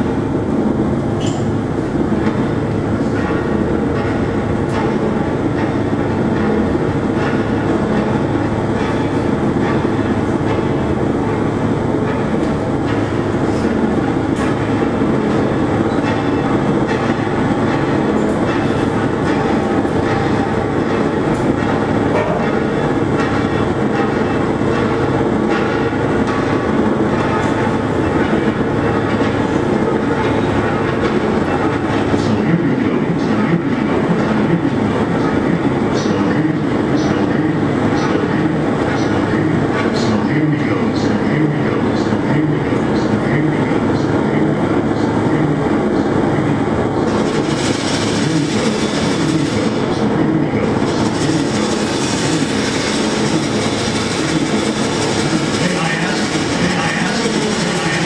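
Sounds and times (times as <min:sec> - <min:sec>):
experimental noise music drone: 0:00.0 - 0:58.0.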